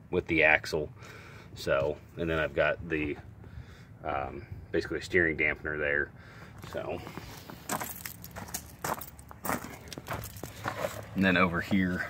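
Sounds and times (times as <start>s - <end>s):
footsteps on gravel: 6.5s - 12.0s.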